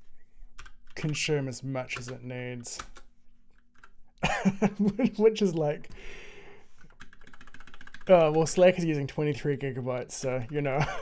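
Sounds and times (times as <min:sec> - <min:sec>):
keyboard keys tapping: 0:06.8 - 0:08.8.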